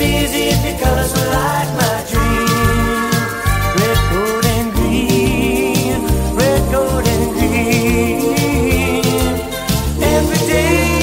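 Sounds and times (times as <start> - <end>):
pop song with bass beat: 0.0 - 11.0.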